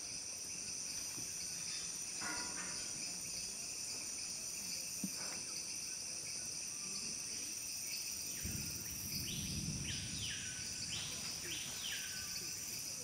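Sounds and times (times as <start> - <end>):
insects droning: 0.0 - 13.0.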